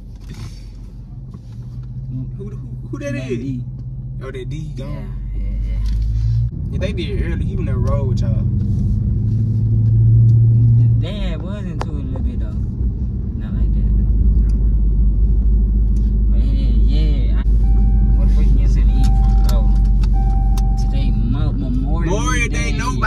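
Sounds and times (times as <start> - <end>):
engine and road rumble: 0.0 - 23.0
seatbelt warning chime: 17.6 - 21.2.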